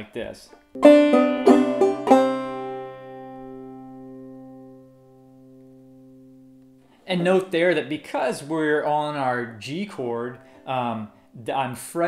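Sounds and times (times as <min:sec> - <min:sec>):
banjo plucked notes and strum: 0:00.8 - 0:06.8.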